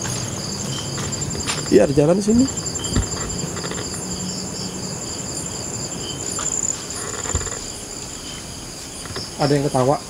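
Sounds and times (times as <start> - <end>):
crickets chirping: 0.0 - 10.0.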